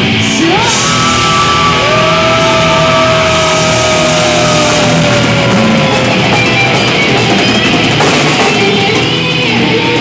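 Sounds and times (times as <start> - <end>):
thrash metal band playing: 0.0 - 10.0.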